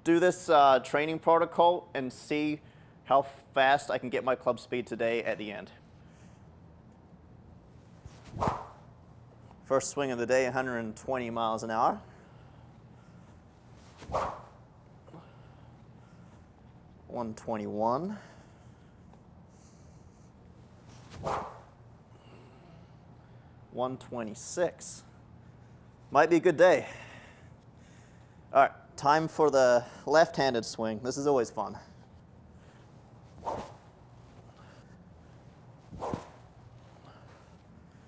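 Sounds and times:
stick whooshing through air: 8.0s - 8.9s, 13.7s - 14.6s, 20.9s - 21.8s, 33.2s - 34.5s, 35.6s - 37.6s.

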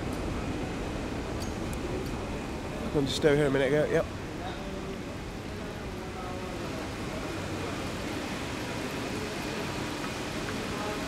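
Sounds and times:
airport terminal low hum: 0.0s - 11.0s.

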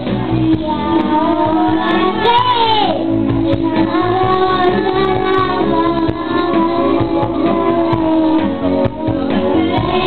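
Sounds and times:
backing music with steady beat: 0.0s - 10.0s
children singing karaoke: 0.0s - 10.0s.

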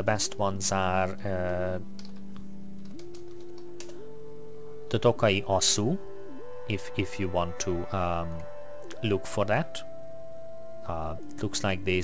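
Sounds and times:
steady held tone: 4.1s - 12.0s.

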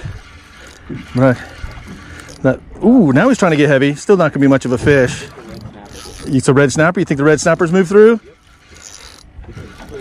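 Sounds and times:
fishing reel being cranked: 0.0s - 10.0s.

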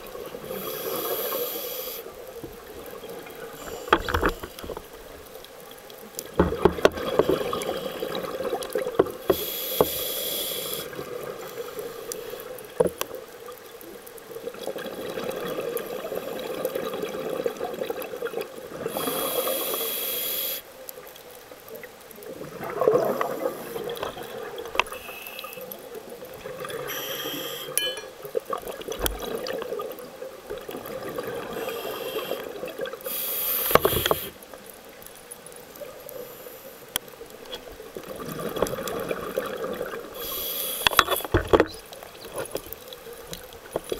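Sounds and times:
steady watery hiss: 0.0s - 43.9s.

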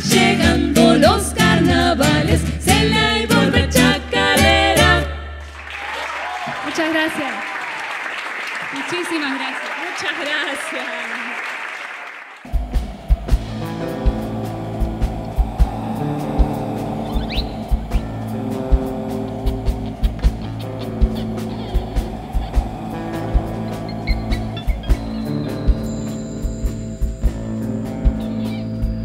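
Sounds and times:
audience applauding and cheering: 5.3s - 28.6s
music with kick-drum beat and bass: 12.5s - 29.0s.

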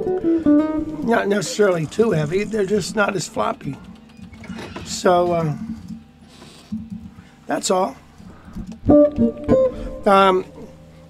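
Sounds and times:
electric guitar notes picked: 0.0s - 3.6s, 8.3s - 11.0s.

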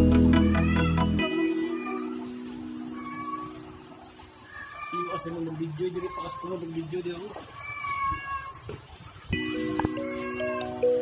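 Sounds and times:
cat mewing: 7.5s - 8.6s.

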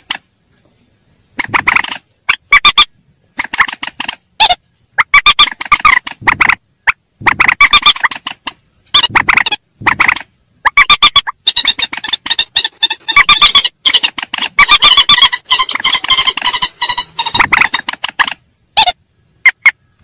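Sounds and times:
harsh rapid bird calls: 1.3s - 20.0s.

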